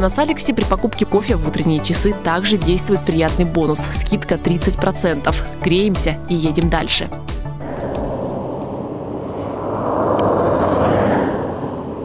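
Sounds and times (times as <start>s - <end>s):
background music: 0.0s - 8.8s
car driving past on snow: 7.6s - 12.0s.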